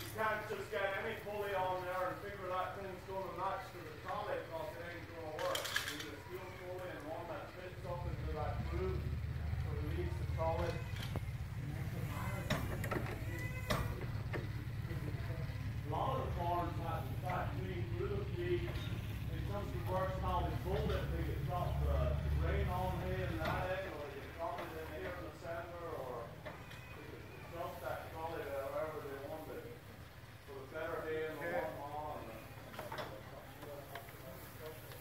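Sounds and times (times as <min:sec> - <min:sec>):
hay hook and pulley rattling: 0:00.0 - 0:29.4
people talking: 0:00.0 - 0:35.0.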